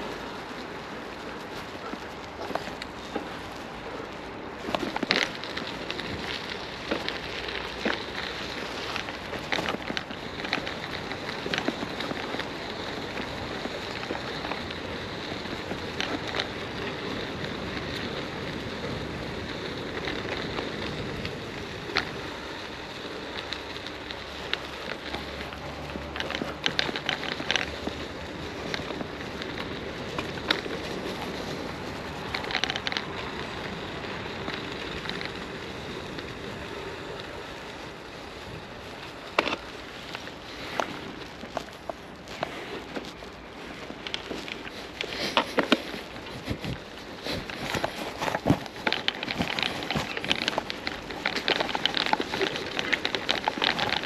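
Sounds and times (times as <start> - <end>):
rain falling: 0.0 - 54.0
sharp ticks of raindrops: 0.0 - 54.0.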